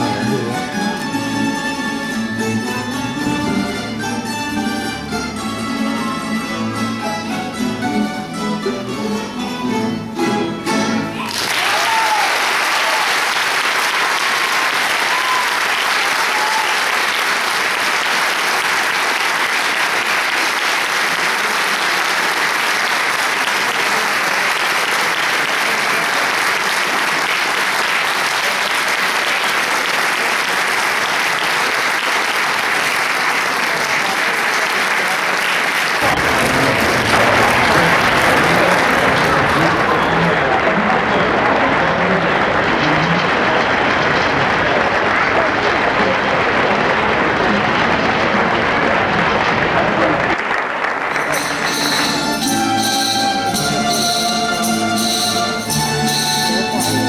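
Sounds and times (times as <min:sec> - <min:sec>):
plucked string ensemble: 0:00.0 - 0:11.4, 0:36.0 - 0:50.2, 0:51.1 - 0:57.0
audience applauding: 0:11.1 - 0:57.0.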